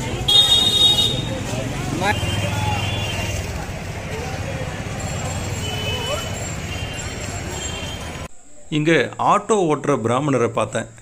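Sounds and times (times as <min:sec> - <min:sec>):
low rumble of traffic: 0:00.0 - 0:08.3
people chattering: 0:00.0 - 0:09.0.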